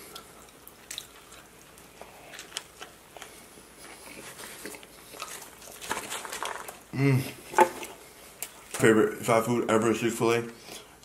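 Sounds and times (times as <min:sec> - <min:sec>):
person chewing: 0:00.0 - 0:08.7.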